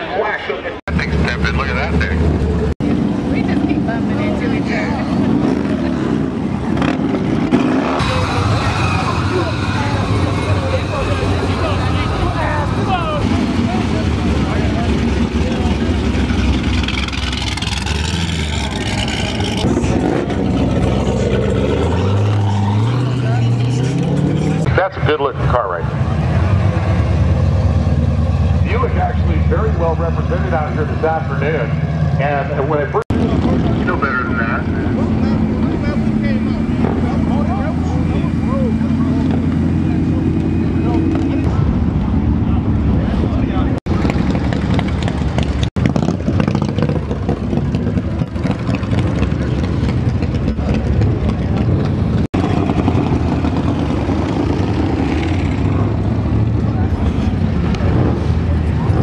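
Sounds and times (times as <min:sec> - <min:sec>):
people talking: 0:00.0 - 0:02.2, 0:03.2 - 0:06.1, 0:08.0 - 0:16.6, 0:23.0 - 0:23.7, 0:24.4 - 0:25.9, 0:28.6 - 0:41.7, 0:42.4 - 0:44.1, 0:56.6 - 0:59.0
race car engines revving: 0:00.0 - 0:59.0.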